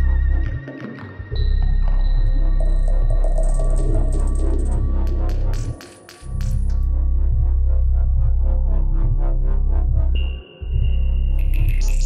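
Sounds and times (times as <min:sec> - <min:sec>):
deep bass drone: 0:00.0 - 0:00.6, 0:01.3 - 0:05.7, 0:06.3 - 0:12.0.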